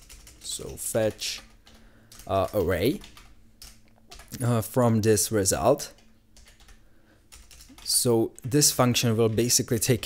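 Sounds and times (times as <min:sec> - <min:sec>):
typing on keyboard: 0:00.0 - 0:04.4, 0:05.9 - 0:08.0.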